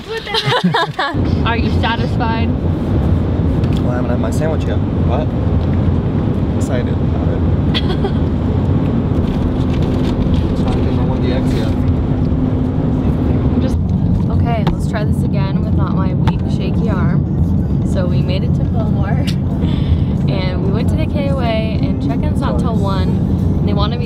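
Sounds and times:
voices talking: 0:00.0 - 0:02.5
car cabin road noise: 0:00.0 - 0:24.0.

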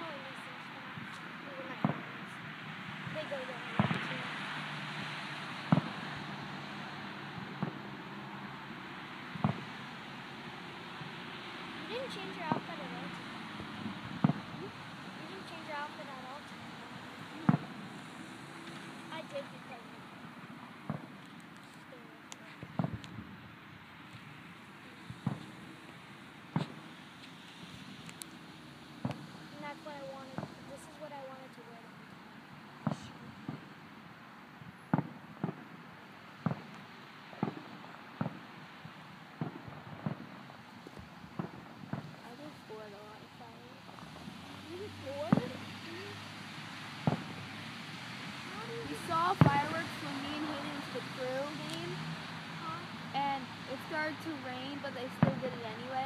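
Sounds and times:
fireworks bangs and pops: 0:00.1 - 0:56.0.

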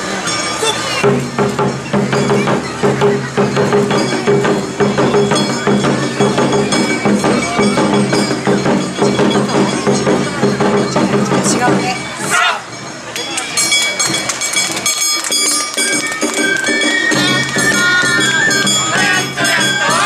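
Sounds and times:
fast drums and percussion: 0:00.0 - 0:20.0.

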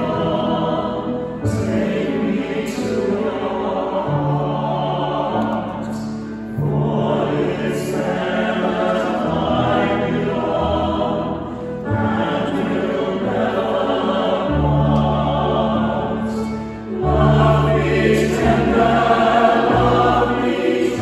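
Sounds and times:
mixed choir singing: 0:00.0 - 0:21.0
piano: 0:00.0 - 0:21.0.

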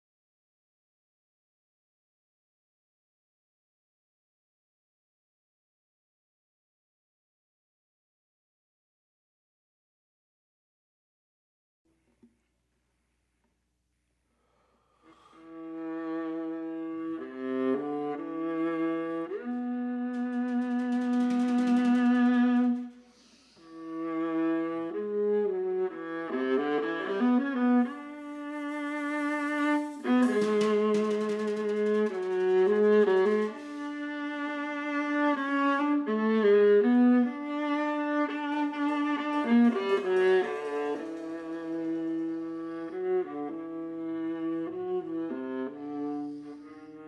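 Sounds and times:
viola bowed notes: 0:15.1 - 0:47.0
percussion: 0:19.4 - 0:24.0, 0:27.8 - 0:34.9, 0:37.6 - 0:43.0.

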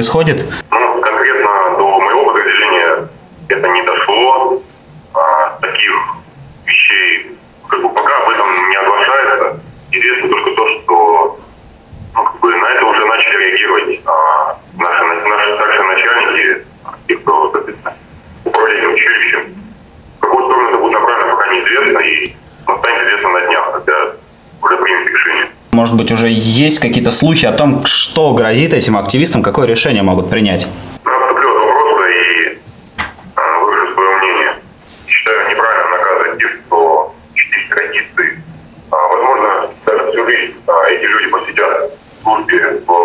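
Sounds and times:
man talking over telephone: 0:00.0 - 0:11.4, 0:12.2 - 0:32.6, 0:33.3 - 0:43.0
person speaking: 0:00.0 - 0:43.0.

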